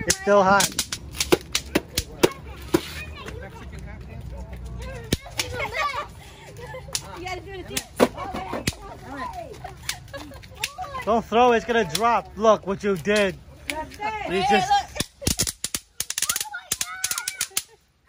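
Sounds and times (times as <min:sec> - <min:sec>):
snap pops cracking: 0:00.1 - 0:02.2, 0:15.0 - 0:17.8
excited voices and squeals: 0:16.1 - 0:17.8.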